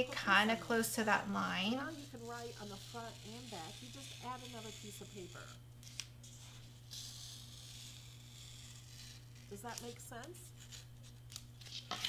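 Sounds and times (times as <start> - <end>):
pencil scratching on board: 1.6 - 5.4.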